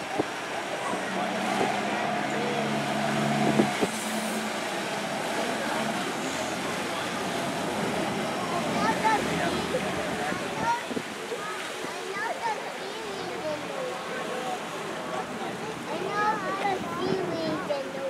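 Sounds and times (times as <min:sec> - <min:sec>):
boat engine drone: 0:00.0 - 0:18.0
water rushing in wake: 0:00.0 - 0:18.0.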